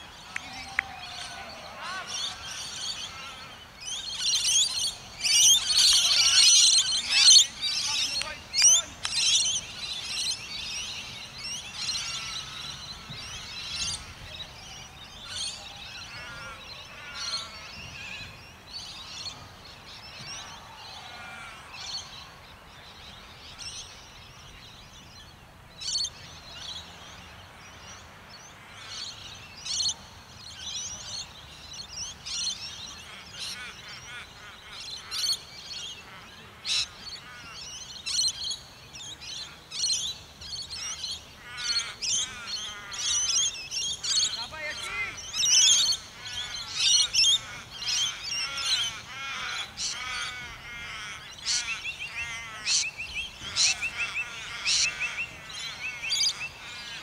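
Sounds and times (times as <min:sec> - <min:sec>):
birds chirping: 0:00.0 - 0:57.0.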